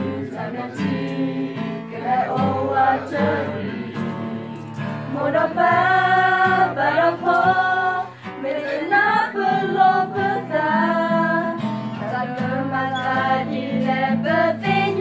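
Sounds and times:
group of men and women singing: 0.0s - 15.0s.

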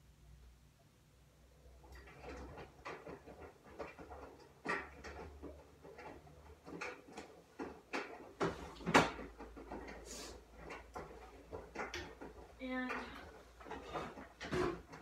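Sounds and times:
kitchen knocks and clicks: 1.9s - 15.0s.

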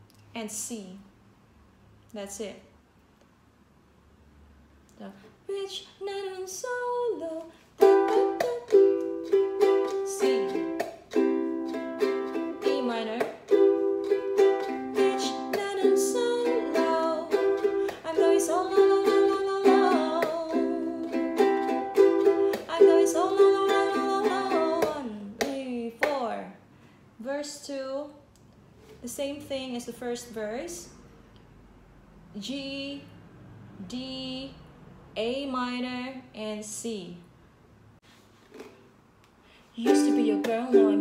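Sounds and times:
woman singing: 5.4s - 10.9s, 11.7s - 13.5s, 14.6s - 26.5s, 39.8s - 41.0s
ukulele strumming: 7.8s - 26.2s, 39.8s - 41.0s.

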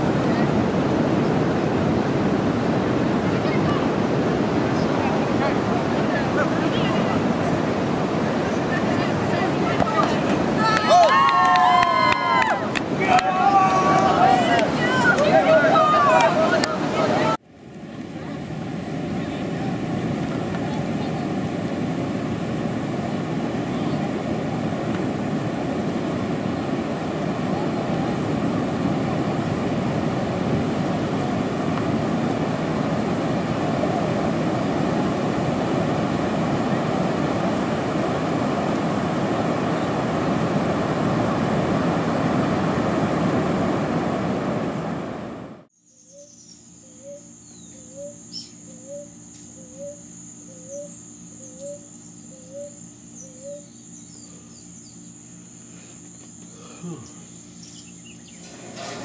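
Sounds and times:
ocean surf breaking: 0.0s - 45.7s
high-pitched insect buzz: 45.8s - 58.4s
short chirping call: 45.8s - 58.5s.

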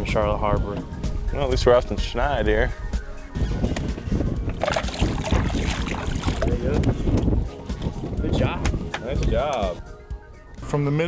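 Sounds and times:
wind buffeting microphone: 0.0s - 10.0s
water lapping against boat: 3.8s - 8.1s.

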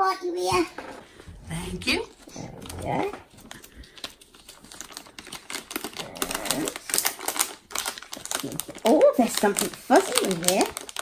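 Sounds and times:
foil packet crinkling: 1.7s - 11.0s.

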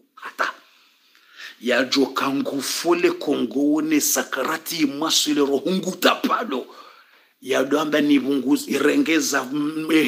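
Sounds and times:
man making breathy hissing sounds: 0.1s - 1.6s.

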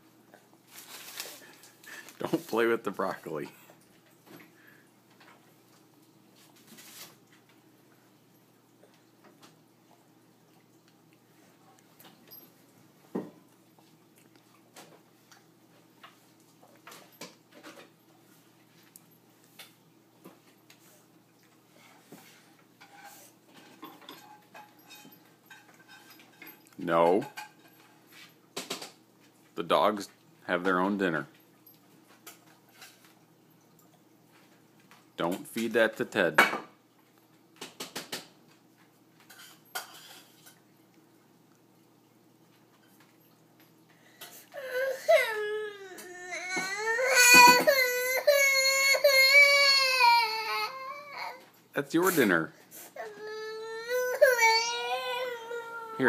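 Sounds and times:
clicks and knocks on hard surface: 37.6s - 38.6s.

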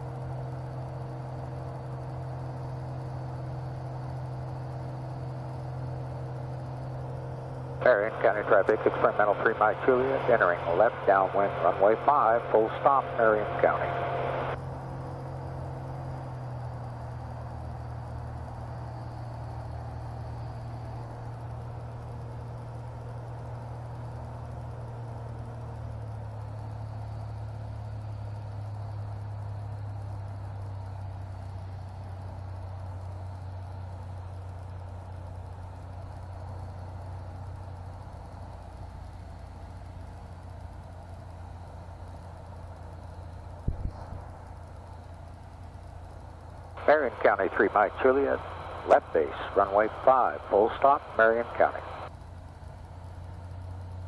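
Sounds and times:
aircraft engine and propeller drone: 0.0s - 54.0s.

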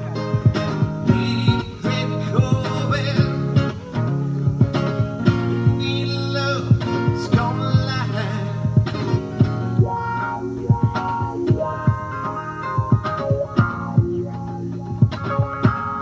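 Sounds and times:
electric guitar strumming: 0.0s - 16.0s.

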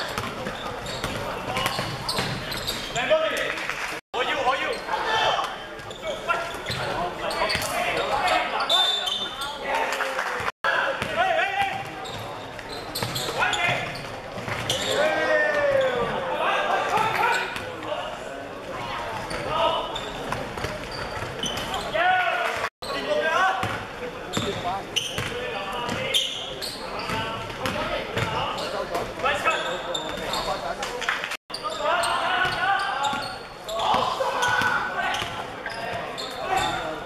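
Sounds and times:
people shouting and talking: 0.0s - 37.0s.

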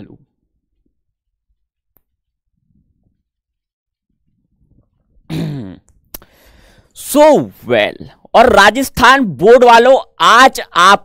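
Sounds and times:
man clearing his throat: 5.3s - 5.9s.

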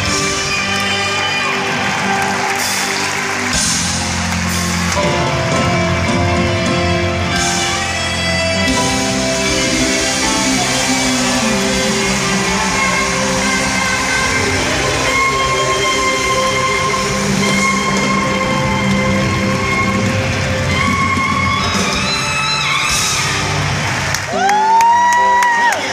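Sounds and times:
live band music in an arena: 0.0s - 25.9s.

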